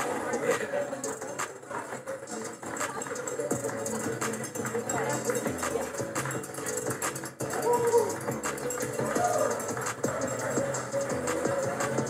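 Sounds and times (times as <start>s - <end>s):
instrumental music with steady beat: 0.0s - 12.0s.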